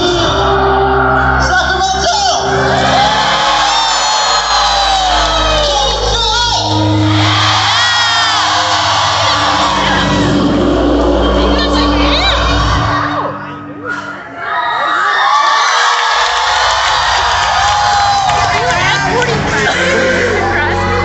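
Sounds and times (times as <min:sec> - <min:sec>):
audience shouting and whooping: 0:00.0 - 0:21.0
loud live concert music: 0:00.0 - 0:21.0.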